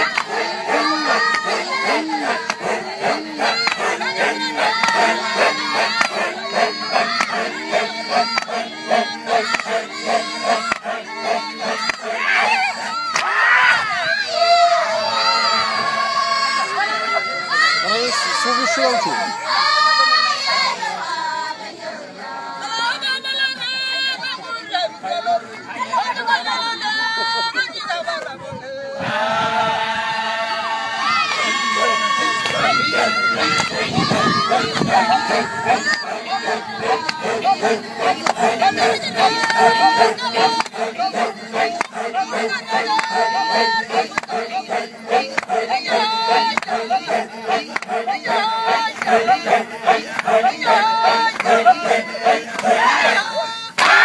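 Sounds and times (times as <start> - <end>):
high voices singing long notes: 0.0 - 18.1, 29.0 - 54.0
children shouting: 0.0 - 20.1, 29.1 - 41.0, 52.8 - 54.0
men chanting with deep grunts: 0.0 - 23.0, 28.8 - 54.0
crowd noise: 0.0 - 54.0.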